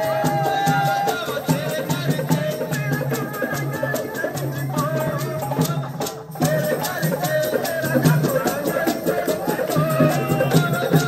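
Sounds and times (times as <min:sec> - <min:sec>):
folk music with drum and rattle: 0:00.0 - 0:11.0.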